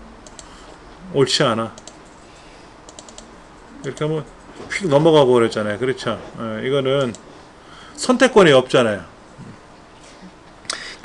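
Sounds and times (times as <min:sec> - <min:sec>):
computer mouse clicks: 0:00.2 - 0:00.6, 0:01.8 - 0:02.3, 0:02.9 - 0:03.3, 0:07.0 - 0:07.3.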